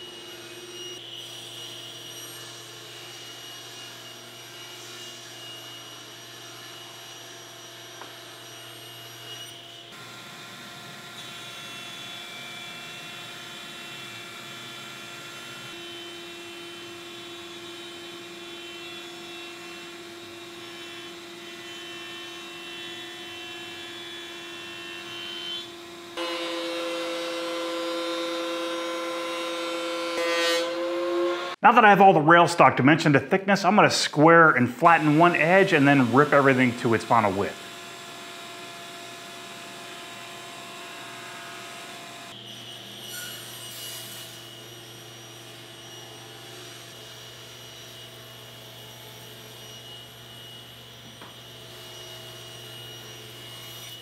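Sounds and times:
loud thickness planer: 0.0 - 31.6, 34.8 - 54.0
jointer running: 26.2 - 30.2
table saw ripping boards: 26.2 - 31.6, 40.0 - 48.2.

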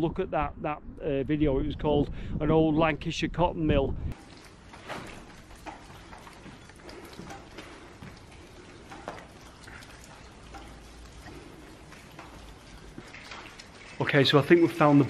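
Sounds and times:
water dripping: 4.1 - 15.0.

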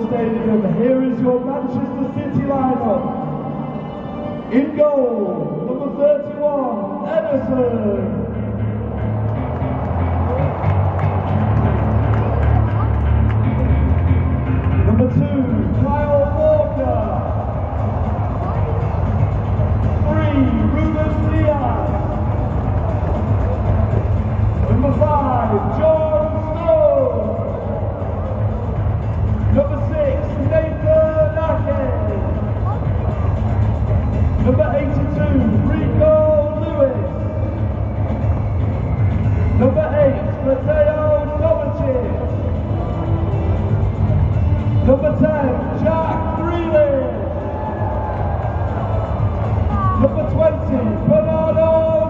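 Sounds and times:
echoing announcer voice: 0.0 - 9.3, 11.3 - 38.3, 39.1 - 52.0
music with deep steady bass: 7.2 - 52.0
crowd rumble: 8.4 - 26.6.

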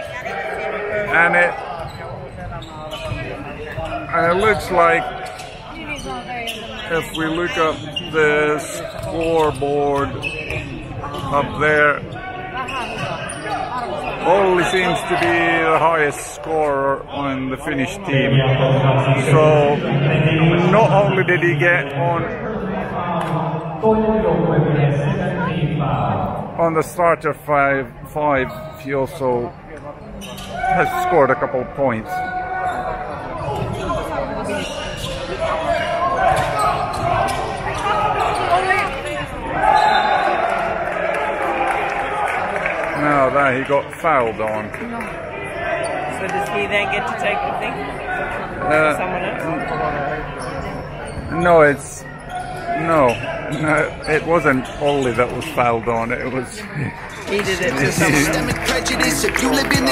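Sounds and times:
spectators and players chattering: 0.0 - 59.9
voices in background: 0.0 - 59.9.

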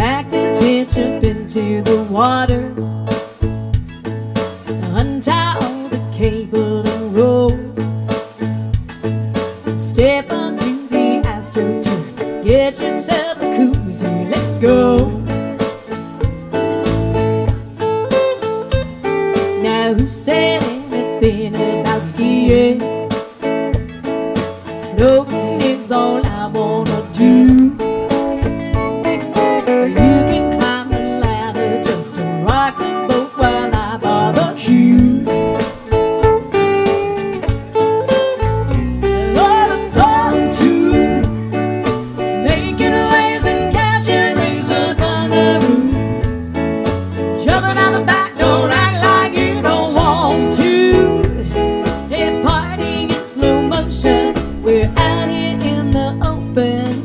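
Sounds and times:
electric keyboard: 0.0 - 57.0
guitar: 0.0 - 57.0.

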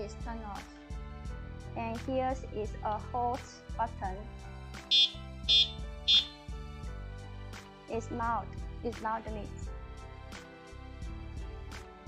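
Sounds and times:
background music: 0.0 - 12.0
high-pitched electronic horn beeps: 4.9 - 6.4.

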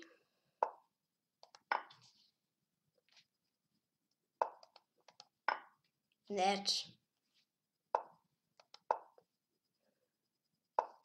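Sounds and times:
mouse clicks: 1.4 - 1.9, 4.4 - 5.4, 8.0 - 9.2.

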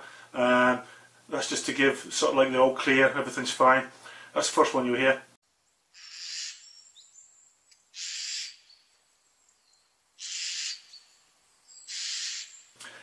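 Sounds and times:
jay harsh calls: 6.0 - 6.7, 7.9 - 8.7, 10.2 - 10.9, 11.9 - 12.6.

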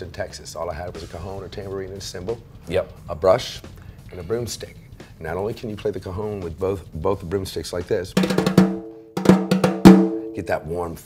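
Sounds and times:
broomsticks on snare drum: 8.2 - 10.4.

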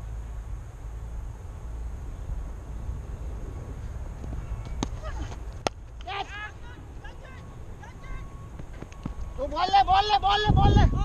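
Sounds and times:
wind buffeting microphone: 1.2 - 11.0.

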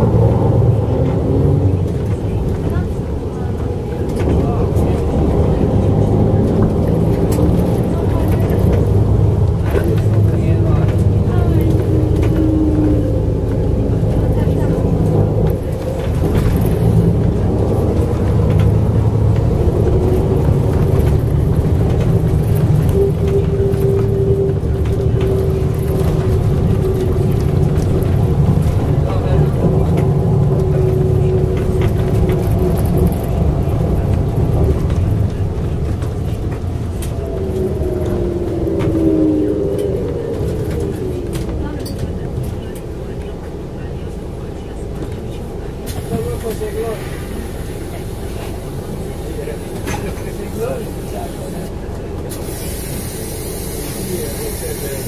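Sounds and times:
tram wheels rumbling on rail: 0.0 - 55.0
tram whine: 0.0 - 55.0.

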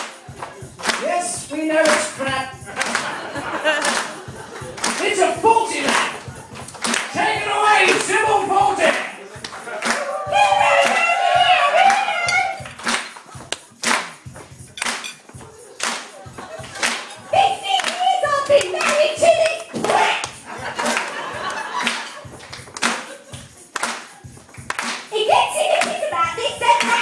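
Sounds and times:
audience clapping in time: 0.0 - 27.0
backing music: 0.0 - 27.0
voice speaking: 5.0 - 6.3, 7.1 - 9.3.

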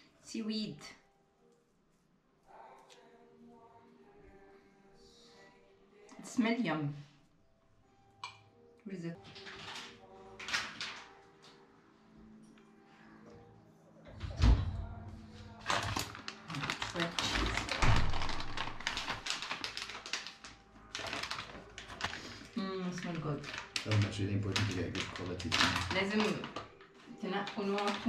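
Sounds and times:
dense crackling and clicking: 15.6 - 28.0
people talking: 17.0 - 17.6, 22.6 - 26.5, 27.2 - 28.0.

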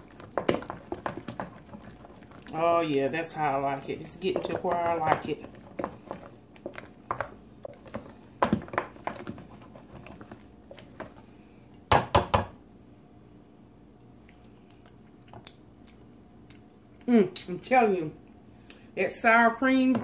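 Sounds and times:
utensil stirring mashed potatoes: 0.0 - 11.4
utensil knocking on metal pot: 4.0 - 6.1.

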